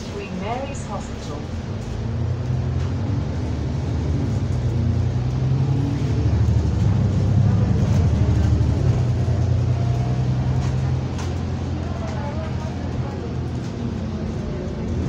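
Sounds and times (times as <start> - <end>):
bus engine droning: 0.0 - 15.0.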